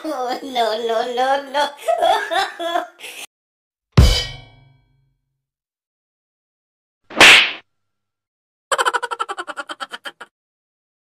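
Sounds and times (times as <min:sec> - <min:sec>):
whip-crack swish: 0:07.1 - 0:07.6.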